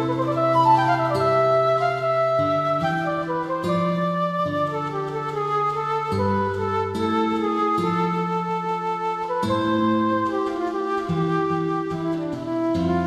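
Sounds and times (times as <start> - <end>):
flute melody: 0.0 - 13.0.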